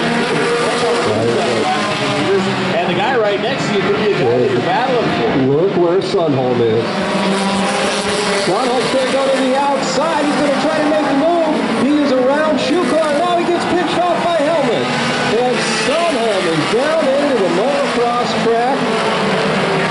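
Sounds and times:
race cars running laps: 0:00.0 - 0:19.9.

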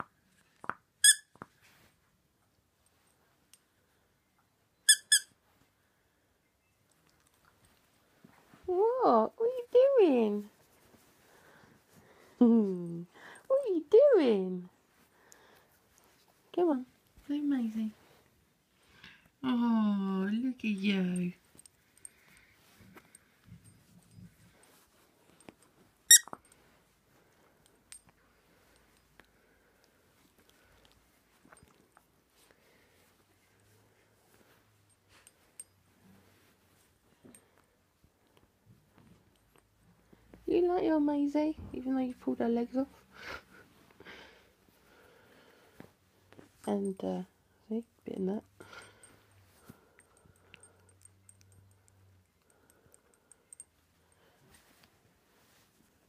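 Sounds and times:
dog toy squeaking: 0:01.0 - 0:01.4, 0:04.9 - 0:05.4, 0:26.1 - 0:26.4.

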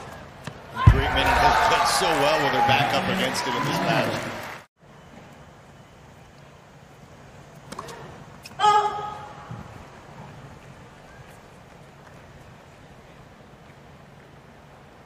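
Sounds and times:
hushed stadium crowd: 0:00.0 - 0:05.3.

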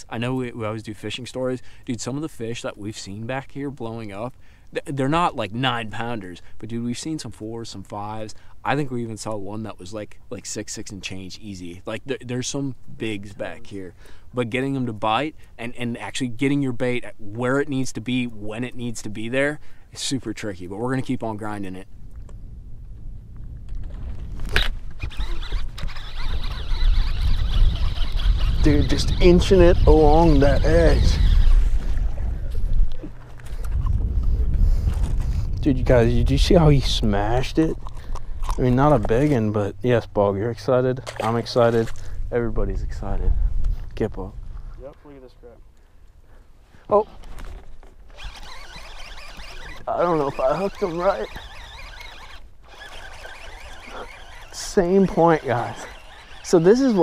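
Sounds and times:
wind rumbling on microphone: 0:20.8 - 0:40.1, 0:41.4 - 0:44.8
fishing reel whirring: 0:24.4 - 0:32.5, 0:48.1 - 0:57.0.

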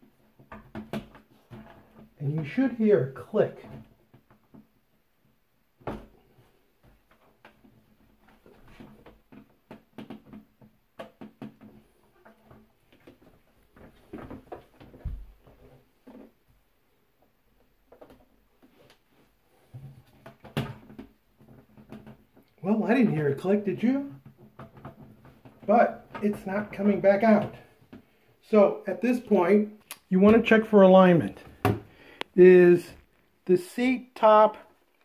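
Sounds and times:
plastic knocks and rubbing: 0:00.1 - 0:02.6, 0:03.6 - 0:16.5, 0:17.2 - 0:22.6, 0:24.0 - 0:28.2.

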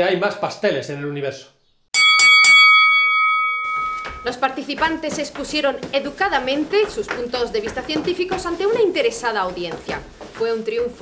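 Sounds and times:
boxing ring bell ringing: 0:02.0 - 0:04.4.

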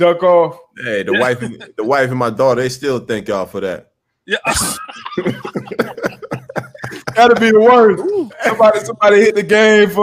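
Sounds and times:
men laughing: 0:01.1 - 0:01.8, 0:04.3 - 0:09.0.

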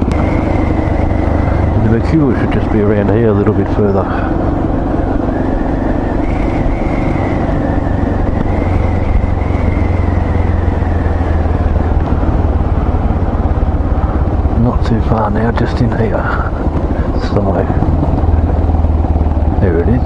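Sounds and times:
motorcycle engine cruising: 0:00.0 - 0:20.0.

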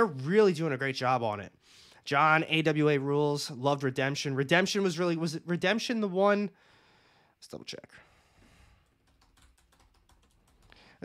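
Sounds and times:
keyboard typing: 0:08.8 - 0:11.0.

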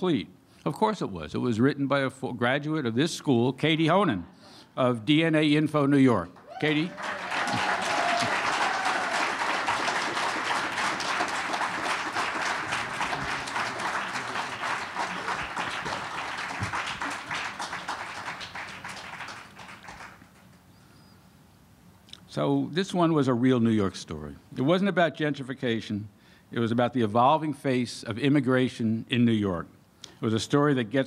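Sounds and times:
audience applauding: 0:06.4 - 0:20.6.

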